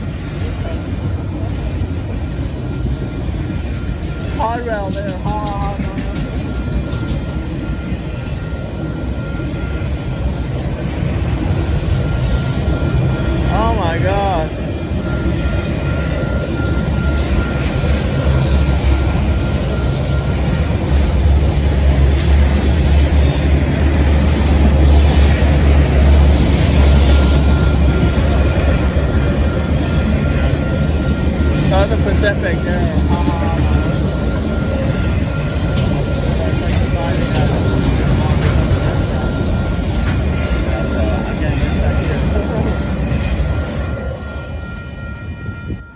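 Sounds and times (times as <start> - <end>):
crossing signal bell ringing: 0.0 - 45.9
freight train wheels rumbling: 0.0 - 45.9.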